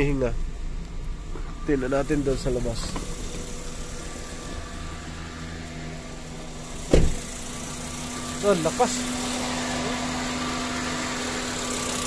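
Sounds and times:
car engine idling with misfire: 0.0s - 12.0s
loud thump: 6.8s - 7.3s.

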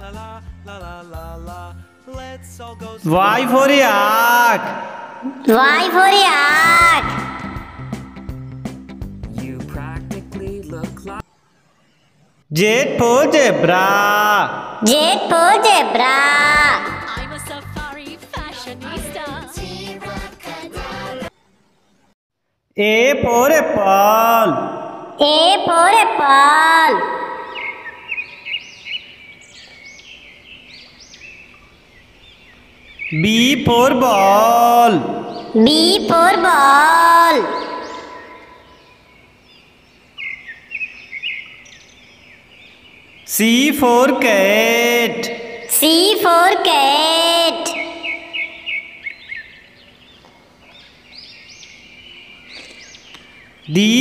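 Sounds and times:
birds chirping: 2.8s - 18.2s, 23.5s - 54.0s.

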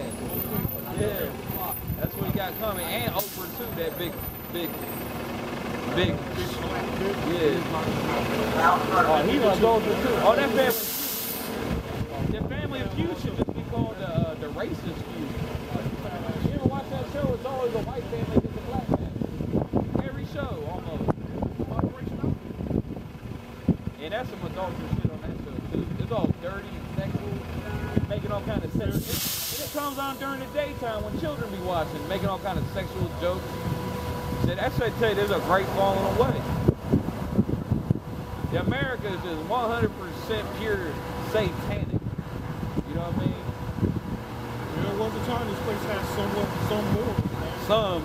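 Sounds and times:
indistinct voices talking: 0.0s - 48.0s
street traffic noise: 0.0s - 48.0s
bus air brakes hissing: 3.1s - 3.8s, 10.6s - 11.7s, 28.9s - 30.5s.

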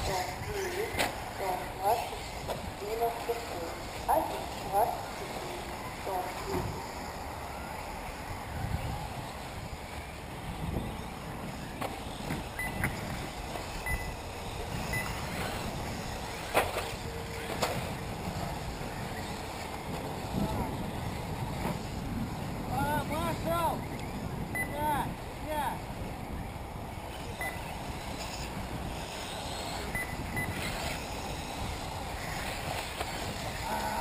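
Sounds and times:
people talking: 0.0s - 6.9s, 20.2s - 20.9s, 22.7s - 23.8s, 33.6s - 34.0s
rc buggy motors and tyres: 0.0s - 34.0s.

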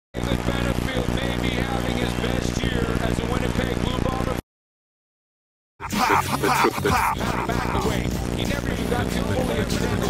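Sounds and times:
person speaking: 5.8s - 8.1s.

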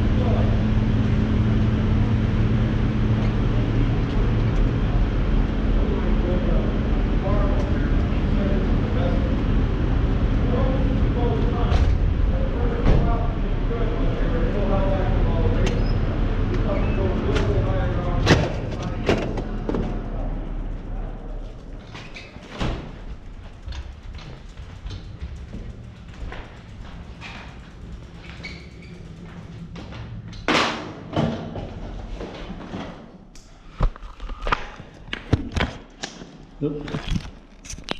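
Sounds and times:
low rumble: 0.0s - 32.3s.

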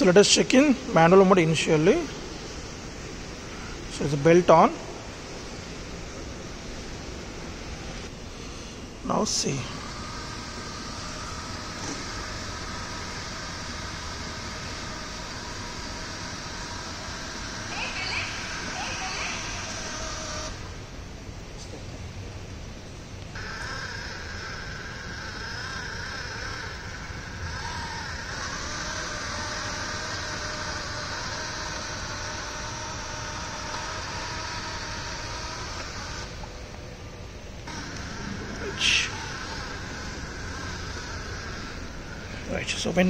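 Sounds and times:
small gear motors whining: 0.0s - 21.4s, 22.9s - 43.0s.

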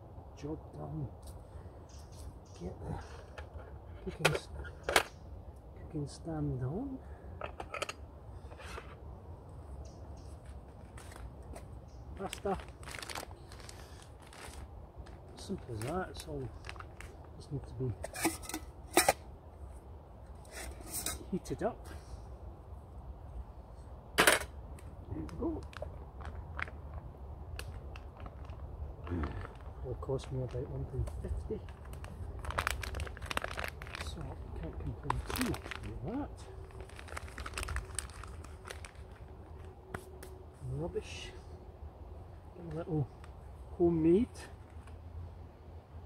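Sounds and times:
plastic sachet crinkling: 12.2s - 17.2s, 31.6s - 39.6s
steel can scraping on stove: 18.0s - 19.2s.

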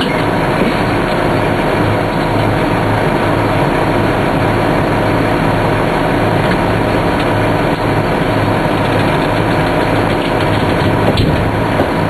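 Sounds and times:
truck engine running: 0.0s - 12.0s.

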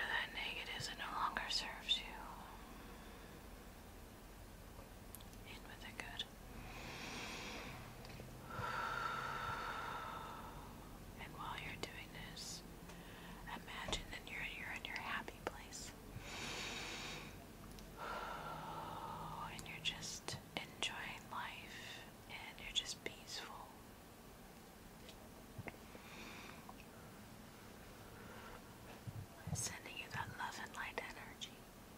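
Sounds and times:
soft whispering: 0.0s - 2.8s, 5.3s - 7.9s, 9.3s - 16.0s, 18.0s - 23.8s, 28.3s - 31.7s
slow deep breaths: 2.2s - 3.8s, 6.5s - 11.1s, 12.8s - 13.5s, 16.1s - 19.6s, 21.6s - 22.2s, 25.8s - 29.7s.

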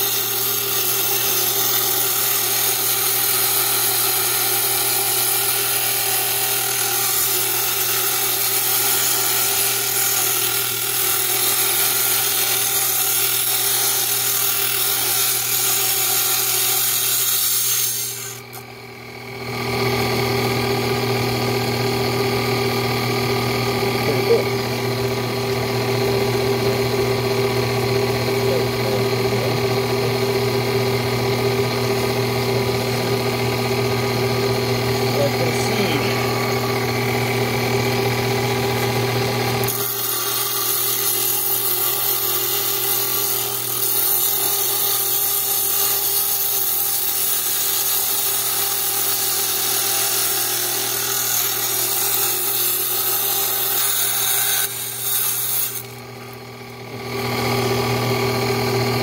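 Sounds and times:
saw blade grinding stone: 0.0s - 18.7s, 34.9s - 56.4s
saw motor hum: 0.0s - 59.0s.

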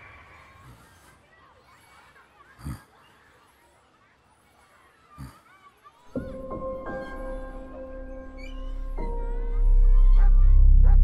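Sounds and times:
faint bird chirps: 5.9s - 10.3s.

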